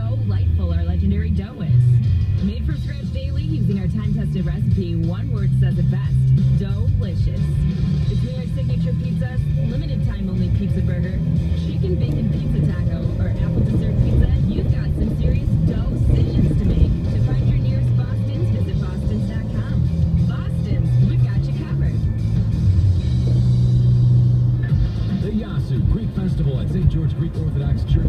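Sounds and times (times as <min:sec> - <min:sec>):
car radio voices and music: 0:00.0 - 0:28.0
engine and road noise: 0:00.0 - 0:28.0.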